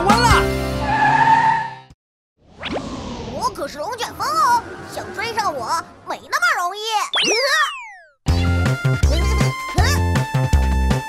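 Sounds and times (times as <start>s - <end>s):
cartoon whoosh rising pitch: 2.4s - 4.6s, 7.1s - 8.2s.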